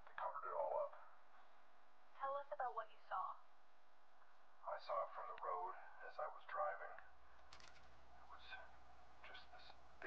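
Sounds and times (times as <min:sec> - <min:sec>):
low steady hum: 0:00.0 - 0:10.0
faint whispering: 0:08.2 - 0:09.8.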